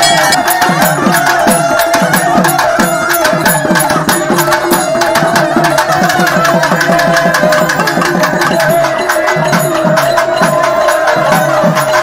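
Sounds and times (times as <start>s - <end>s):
held high note: 0.0s - 0.8s
rapid steady drumming: 0.0s - 12.0s.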